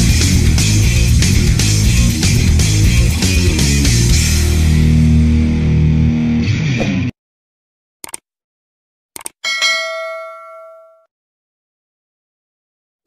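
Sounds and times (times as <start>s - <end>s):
rock music: 0.0s - 7.1s
bright bell ding: 9.4s - 11.1s.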